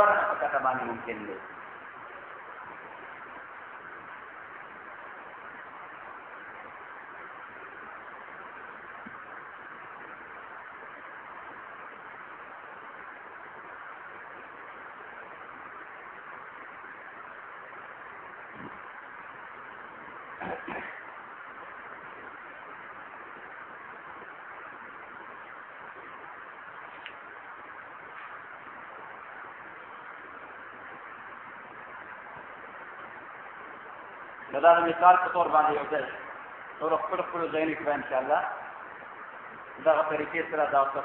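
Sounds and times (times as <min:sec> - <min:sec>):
recording hiss: 0:00.0 - 0:41.0.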